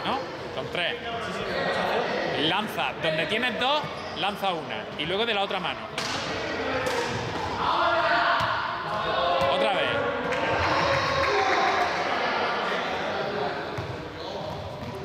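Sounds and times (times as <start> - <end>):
indistinct voices echoing: 0.0 - 15.0.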